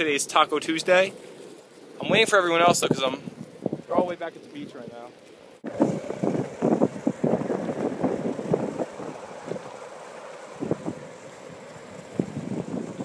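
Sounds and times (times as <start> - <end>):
wind buffeting microphone: 2.0 - 4.8, 5.6 - 13.0.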